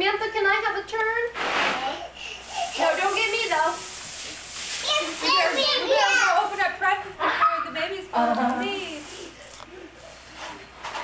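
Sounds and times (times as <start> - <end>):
steady hiss: 1.3 - 7.0, 8.4 - 11.0.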